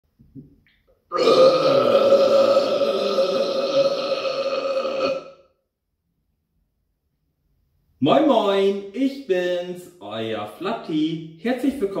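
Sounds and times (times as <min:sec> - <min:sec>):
man burping: 0:01.1 - 0:05.5.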